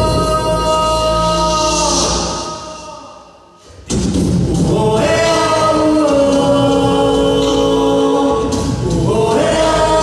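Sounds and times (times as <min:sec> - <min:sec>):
male vocal group singing in harmony: 0:00.0 - 0:03.3, 0:04.4 - 0:10.0.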